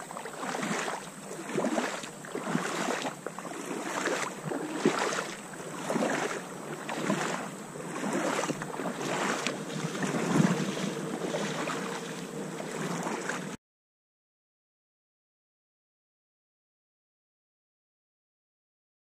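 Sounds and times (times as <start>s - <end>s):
river water lapping and splashing: 0.0s - 13.6s
wind noise: 4.4s - 13.6s.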